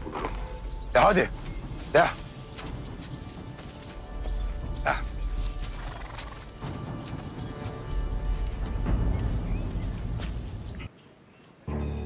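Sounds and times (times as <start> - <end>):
horses moving over leaf litter: 1.4 - 9.4.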